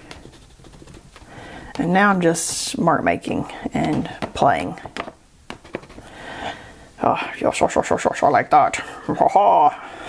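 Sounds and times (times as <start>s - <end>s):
crayon scribbling on paper: 0.0s - 1.2s.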